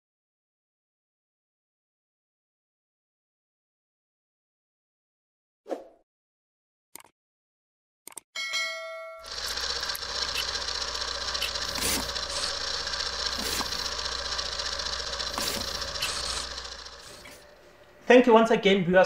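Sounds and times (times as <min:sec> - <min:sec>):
short ringing bell chime: 0:08.4 - 0:09.3
low hum: 0:09.3 - 0:18.1.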